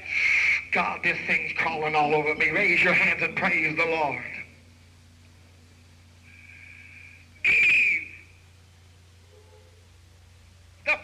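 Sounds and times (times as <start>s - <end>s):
high whistling tone: 7.4s - 8.4s.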